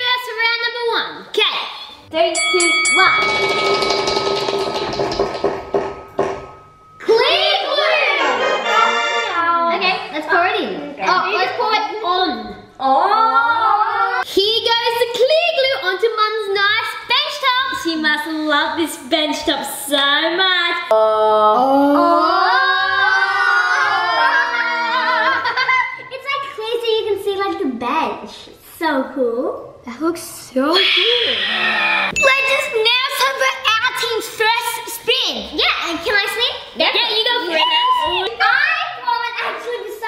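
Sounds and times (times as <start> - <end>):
children calling excitedly: 30.6 - 40.0.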